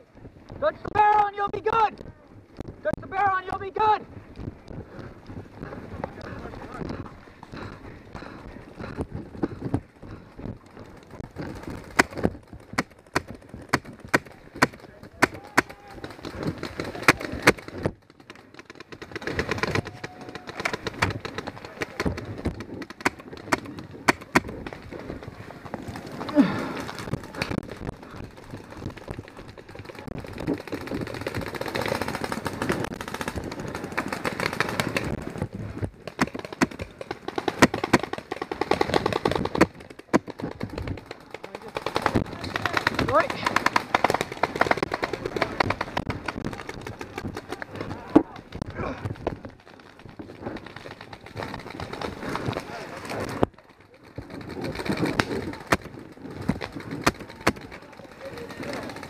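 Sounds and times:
paintball markers firing: 11.4s - 17.8s, 19.0s - 24.8s, 36.1s - 41.0s
voices shouting: 19.7s - 21.0s.

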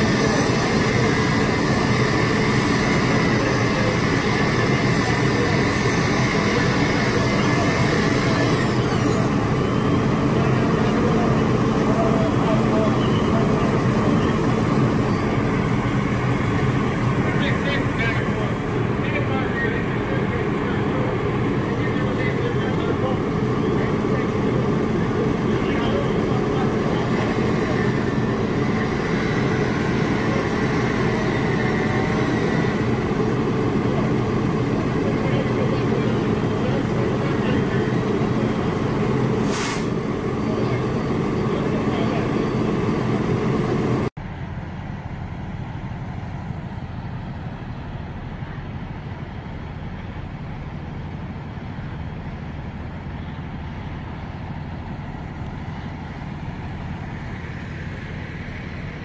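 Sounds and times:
diesel engine running: 0.0s - 59.0s
distant engines rumbling: 0.0s - 59.0s
air hiss: 39.4s - 40.0s.

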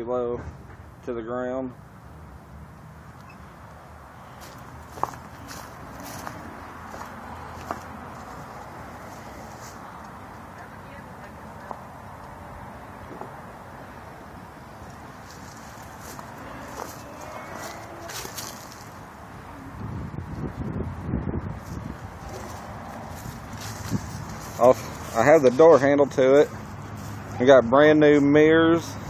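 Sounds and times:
low rumbling on microphone: 15.9s - 25.1s.

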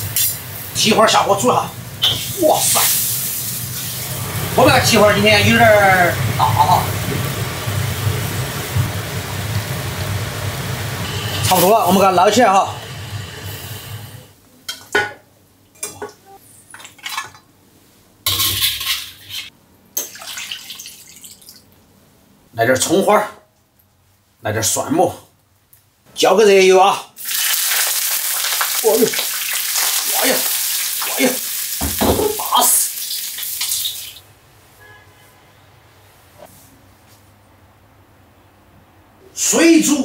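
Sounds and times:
hot oil sizzling: 0.0s - 14.3s, 27.2s - 34.3s
broth splashing into bowl: 27.2s - 31.9s.

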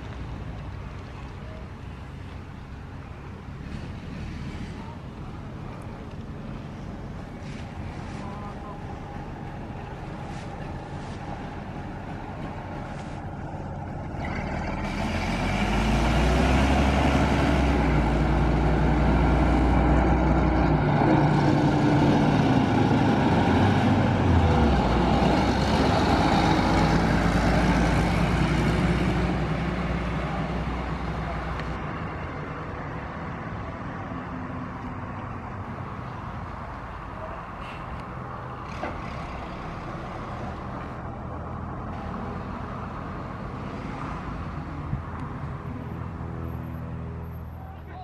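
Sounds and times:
bus diesel engine passing: 0.0s - 48.0s.

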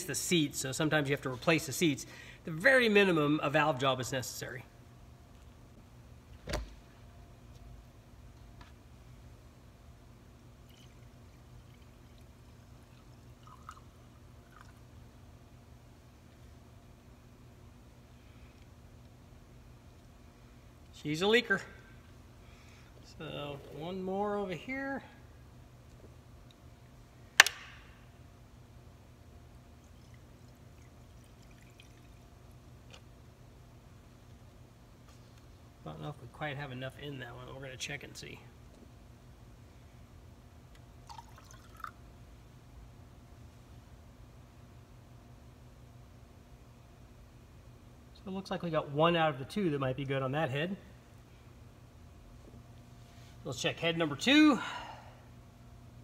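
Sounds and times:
steady low hum: 0.0s - 56.0s
liquid pouring: 10.6s - 14.8s, 29.8s - 32.3s, 41.0s - 42.0s.

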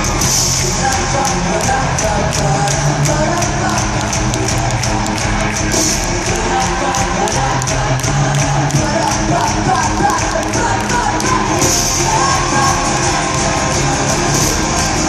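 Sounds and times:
person singing: 0.0s - 15.0s
rock band playing live: 0.0s - 15.0s
steady drumbeat: 0.0s - 15.0s.

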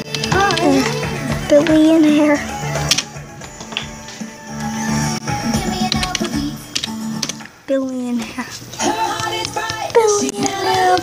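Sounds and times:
child singing along: 0.0s - 2.6s, 5.4s - 6.8s, 7.7s - 11.0s
pop song playing: 0.0s - 7.5s, 8.3s - 11.0s.

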